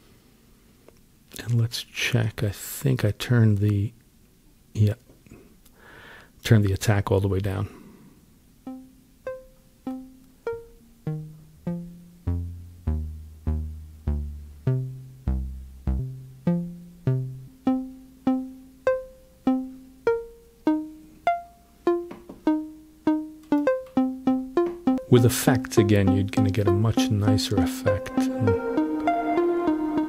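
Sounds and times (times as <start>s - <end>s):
plucked synth melody: 8.7s - 30.0s.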